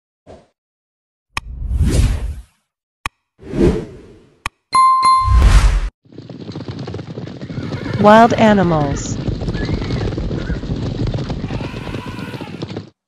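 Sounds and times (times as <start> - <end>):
whooshes: 1.4 - 2.5, 3.4 - 4.3, 5.2 - 5.9
bright bell-like ding: 4.8 - 5.4
herd's hooves clattering: 6.1 - 13.0.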